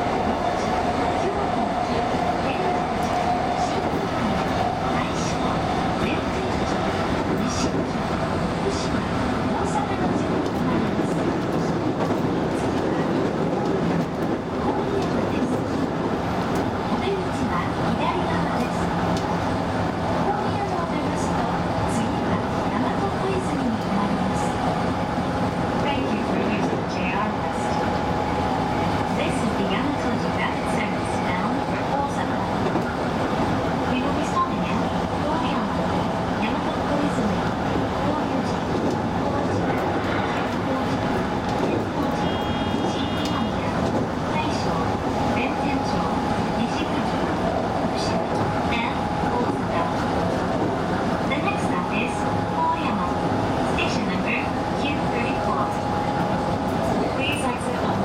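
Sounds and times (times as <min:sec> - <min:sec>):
train equipment hum and whir: 0:00.0 - 0:58.0.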